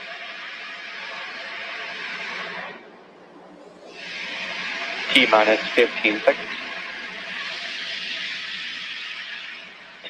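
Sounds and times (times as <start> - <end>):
radio loop hiss: 3.7 - 10.0.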